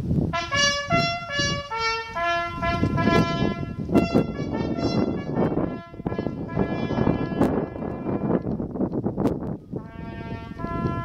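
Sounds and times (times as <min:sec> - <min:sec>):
brass ceremonial call: 0:00.3 - 0:08.4, 0:09.8 - 0:11.0.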